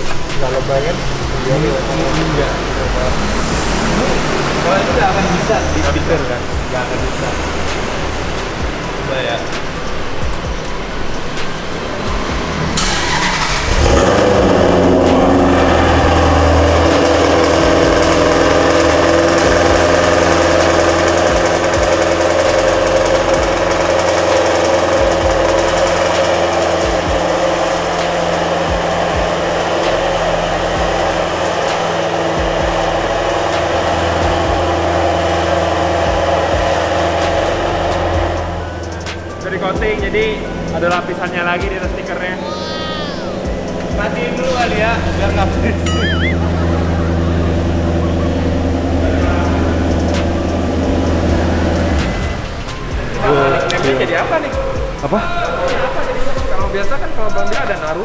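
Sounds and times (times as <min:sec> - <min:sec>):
car engine starting and idling: 0:00.0 - 0:58.0.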